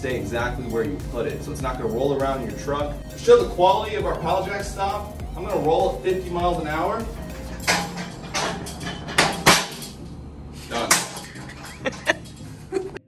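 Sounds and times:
pallet jack wheels rumbling: 0.0 - 13.0
knocks and clatters from jack: 7.2 - 10.1.

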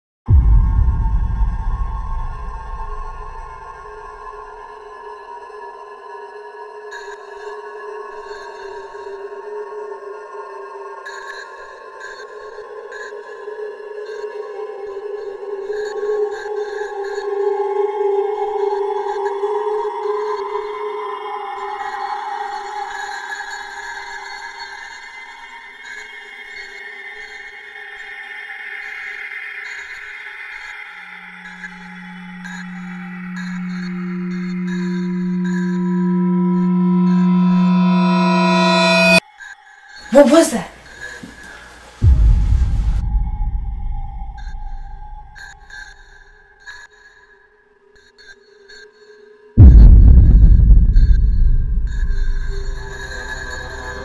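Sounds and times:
low drone: 0.3 - 4.6, 31.1 - 39.2, 42.0 - 46.0, 49.6 - 54.0
sustained electronic tones: 31.3 - 39.2, 49.6 - 54.0.

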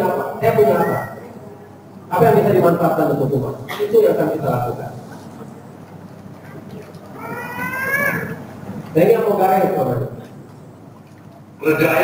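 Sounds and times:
high-pitched rising cry: 7.2 - 8.4.

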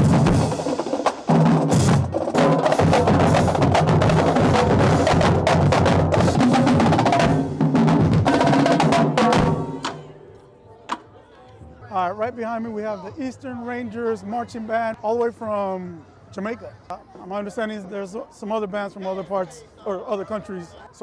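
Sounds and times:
marching drumline playing: 0.0 - 10.1.

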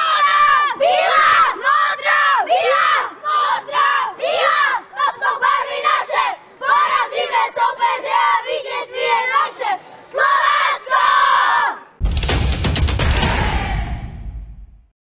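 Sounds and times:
boys shouting a chant: 0.0 - 11.9
crash sound effect with deep bass: 12.0 - 14.9.

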